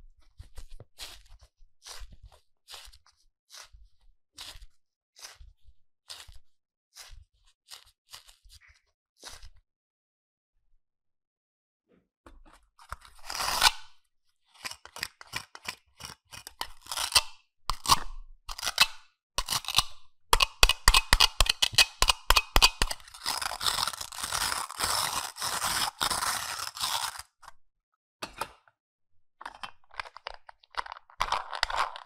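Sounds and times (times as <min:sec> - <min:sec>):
scratchy rubbing: 0:22.5 - 0:27.4.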